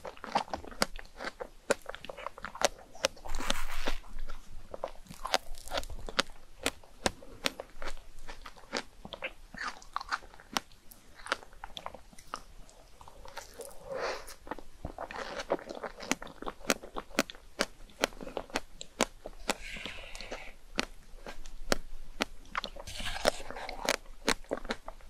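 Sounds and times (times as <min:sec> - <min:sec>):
mouth clicks and smacks: 0:00.0 - 0:25.0
wet chewing: 0:00.0 - 0:25.0.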